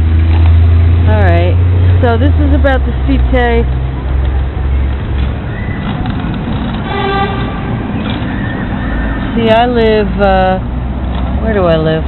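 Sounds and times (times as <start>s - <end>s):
street traffic rumbling: 0.0s - 12.0s
car horn toot: 6.8s - 7.8s.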